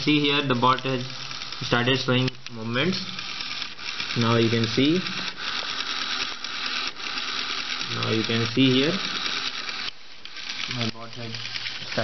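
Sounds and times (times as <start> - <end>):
small motors whirring: 0.0 - 12.0.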